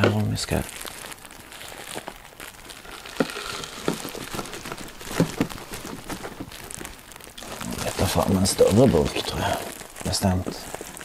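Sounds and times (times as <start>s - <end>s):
paper wrapping crinkling: 0.0s - 11.0s.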